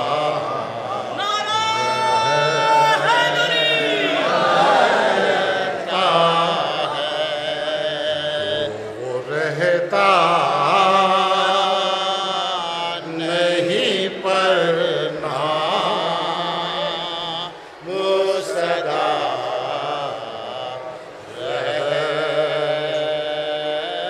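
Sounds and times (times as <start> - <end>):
men chanting a mourning elegy: 0.0 - 24.0.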